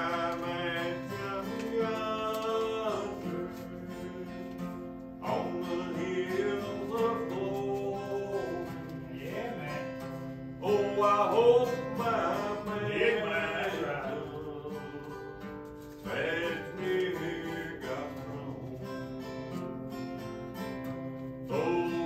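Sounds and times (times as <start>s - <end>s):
man singing: 0.0s - 19.6s, 21.4s - 22.0s
acoustic guitar playing: 0.0s - 22.0s.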